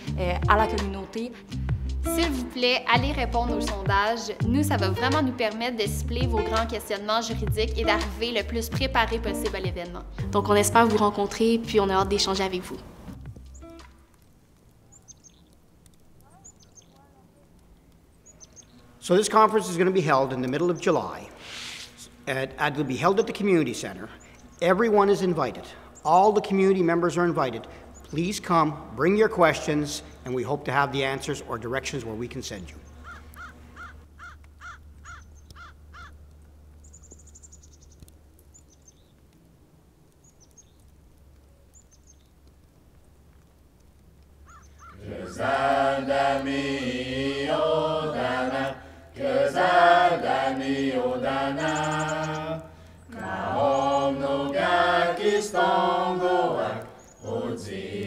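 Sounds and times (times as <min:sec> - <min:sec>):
faint outdoor ambience: 0:00.0 - 0:58.0
small birds chirping: 0:06.4 - 0:45.6, 0:50.8 - 0:58.0
high bird chirps: 0:14.8 - 0:15.5, 0:16.2 - 0:17.1, 0:18.1 - 0:18.8, 0:36.8 - 0:39.1, 0:44.5 - 0:45.0, 0:51.6 - 0:54.1, 0:56.2 - 0:57.4
crow cawing: 0:33.0 - 0:36.2, 0:44.4 - 0:45.4.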